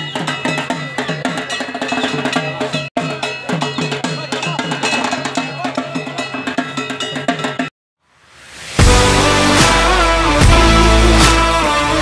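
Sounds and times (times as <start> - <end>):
rapid drum beats: 0.0 - 7.7, 8.8 - 12.0.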